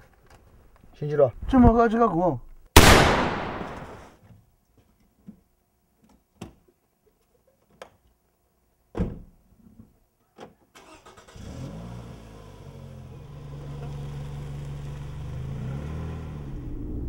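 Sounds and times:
car engine starting and running: 0:10.8 - 0:17.0.

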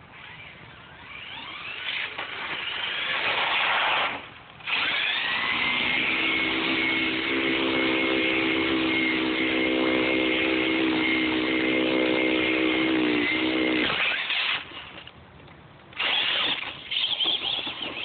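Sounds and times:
electric motor high whine: 0:00.2 - 0:14.7
low hum: 0:04.3 - 0:15.9.

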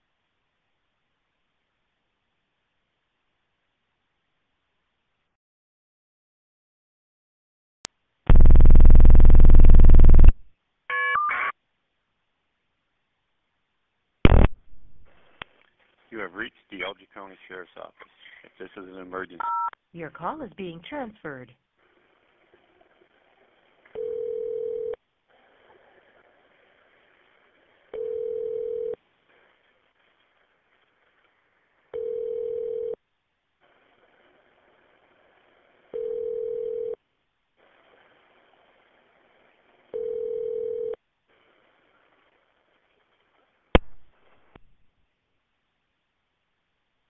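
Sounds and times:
telephone ringback tone: 0:24.0 - 0:25.0, 0:28.0 - 0:29.0, 0:32.0 - 0:33.0, 0:36.0 - 0:37.0, 0:39.9 - 0:41.0.

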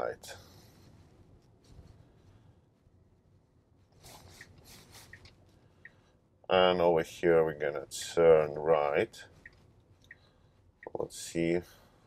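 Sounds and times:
quiet car cabin: 0:00.0 - 0:12.0.

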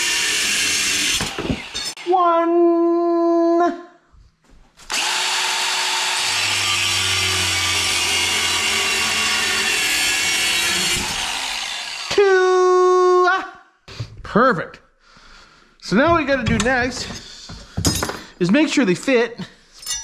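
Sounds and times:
angle grinder cutting metal: 0:00.0 - 0:02.2, 0:04.9 - 0:12.4
grinder disc whining freely: 0:04.9 - 0:12.1.

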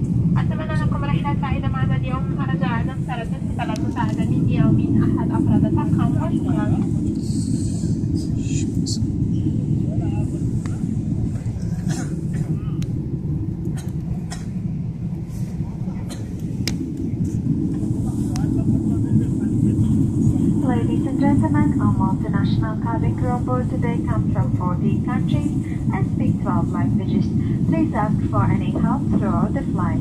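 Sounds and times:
airplane cabin engine roar: 0:00.0 - 0:30.0.

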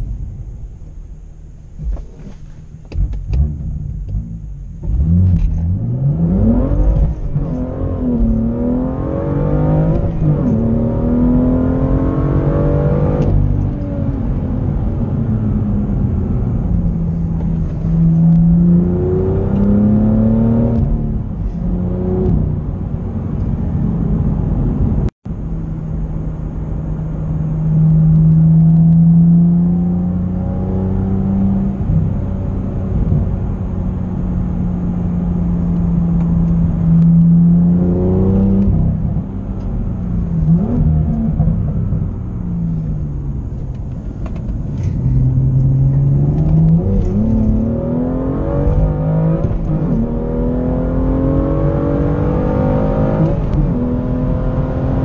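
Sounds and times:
car engine accelerating: 0:01.5 - 0:55.0.

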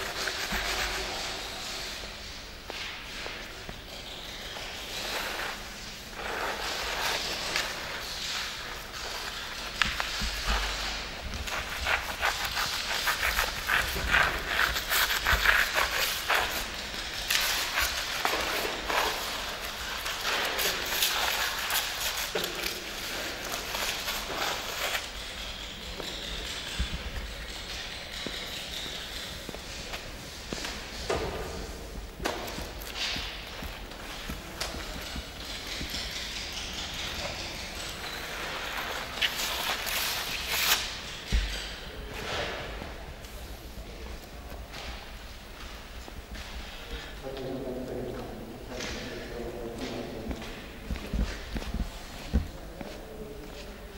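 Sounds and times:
sponge scrubbing on concrete: 0:00.0 - 0:02.1, 0:04.9 - 0:25.3.

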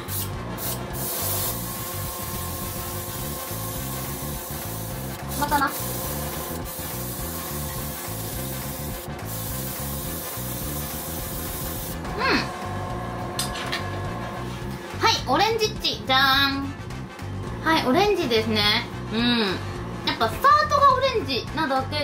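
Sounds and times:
airbrush spraying hiss: 0:00.0 - 0:12.0.

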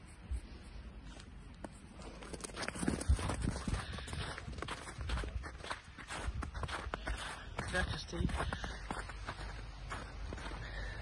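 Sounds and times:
footsteps crunching on snow: 0:01.0 - 0:11.0.

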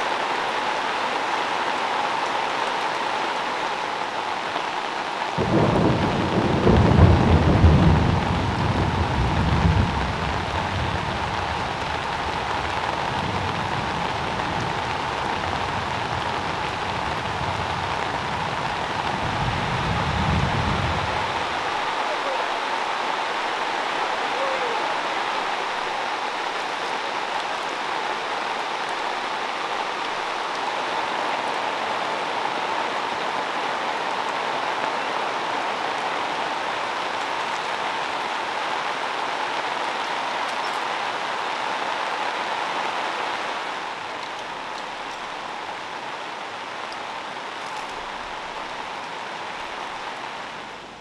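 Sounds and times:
heavy rain falling: 0:00.0 - 0:51.0.

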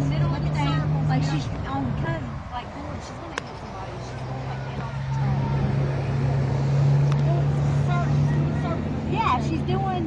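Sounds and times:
car engine running: 0:00.0 - 0:10.0
faint voices: 0:00.0 - 0:10.0.

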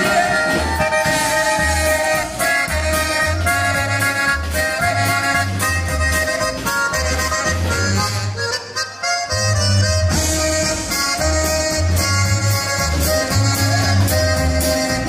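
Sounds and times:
snare drum and cymbal hits: 0:00.0 - 0:03.4
accordion melody: 0:00.0 - 0:15.0.

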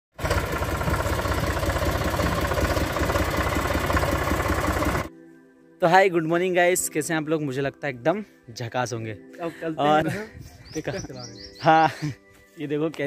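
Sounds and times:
tractor diesel engine running: 0:00.1 - 0:05.1
man's voice: 0:05.8 - 0:13.0.

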